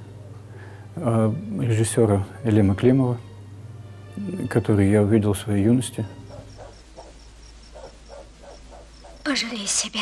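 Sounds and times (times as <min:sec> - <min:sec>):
cricket chirping: 0:05.8 - 0:10.0.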